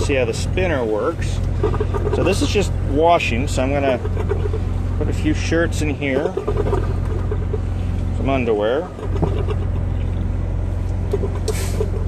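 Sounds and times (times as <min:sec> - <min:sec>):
refrigeration unit droning: 0:00.0 - 0:12.0.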